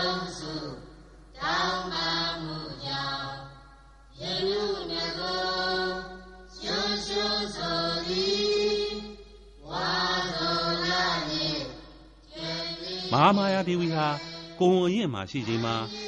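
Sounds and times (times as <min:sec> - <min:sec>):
men chanting: 0:12.6 - 0:16.0.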